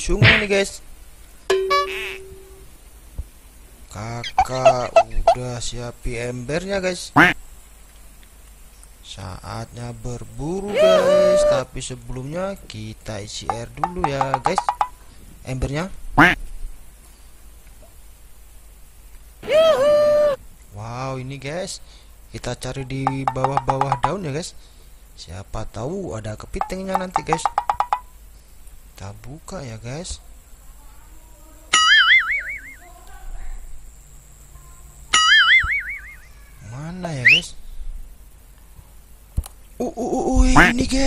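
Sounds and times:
cartoon boing: 1.5 - 2.6, 31.8 - 32.8, 35.2 - 36.3
short loud call: 10.7 - 11.7, 19.4 - 20.4.

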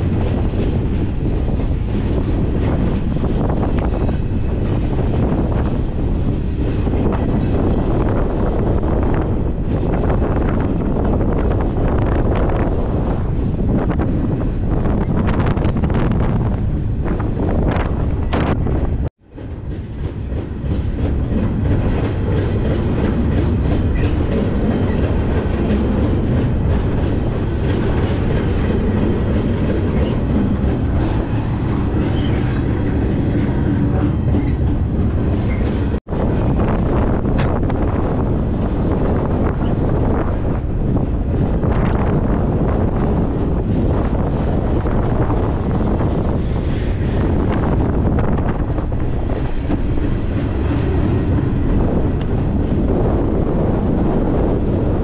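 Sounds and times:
freight train wheels on rails: 0.0 - 55.0
train car rattling: 0.0 - 55.0.

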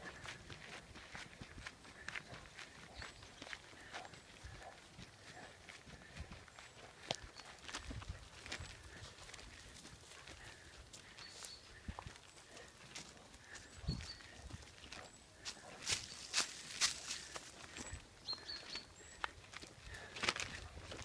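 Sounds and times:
footsteps crunching dry leaves: 14.5 - 17.8.

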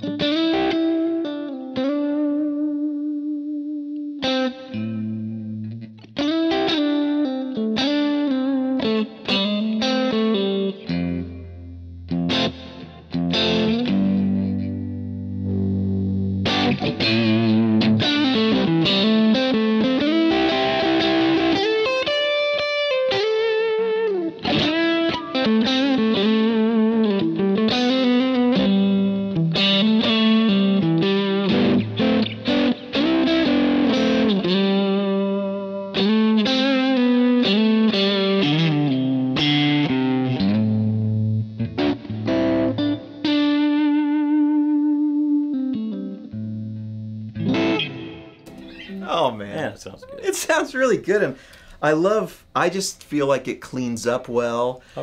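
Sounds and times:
overdriven electric guitar lead: 0.0 - 49.1.

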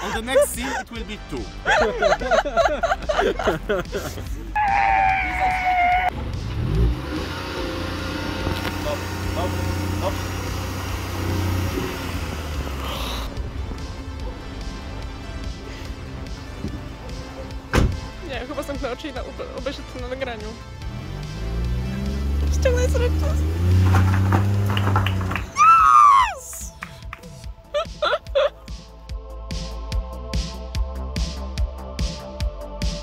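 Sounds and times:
car engine revving: 6.1 - 18.7, 19.6 - 25.6.

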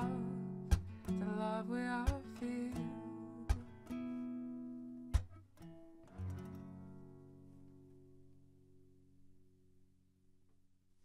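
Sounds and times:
acoustic guitar strummed chords: 0.0 - 9.6.

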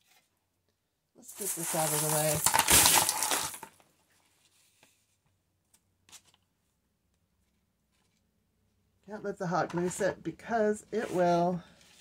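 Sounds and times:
craft leaves rustling clatter: 1.3 - 3.7.

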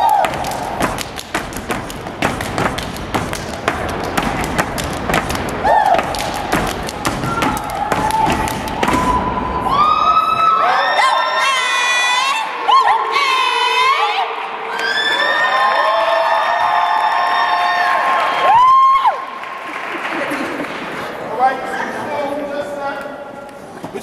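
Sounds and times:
stomping and clapping: 0.0 - 9.4
high-pitched shouts and whoops: 5.6 - 6.2, 7.0 - 19.3.

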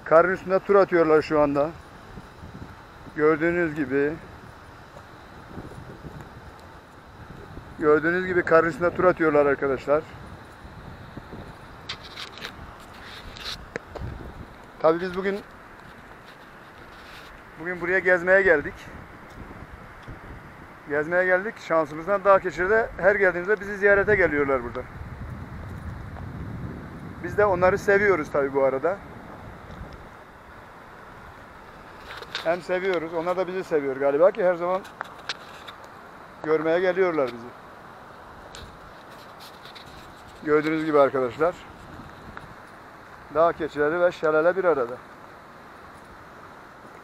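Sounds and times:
wind buffeting microphone: 0.0 - 35.7, 38.2 - 44.8.

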